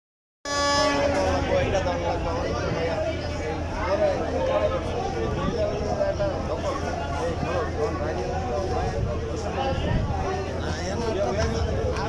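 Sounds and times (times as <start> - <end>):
boat horn blast: 0.4 - 1.7
voices: 0.5 - 12.0.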